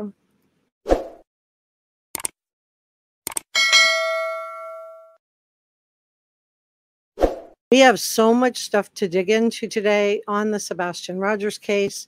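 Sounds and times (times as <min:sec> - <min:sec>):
bell ding: 0:03.6 - 0:05.2.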